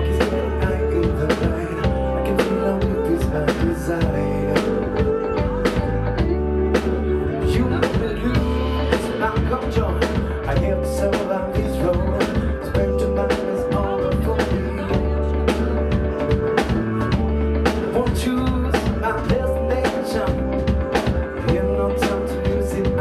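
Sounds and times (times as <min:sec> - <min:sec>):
drum kit beat: 0:00.0 - 0:23.0
guitar: 0:00.0 - 0:23.0
keyboard: 0:00.0 - 0:23.0
man singing: 0:00.0 - 0:23.0.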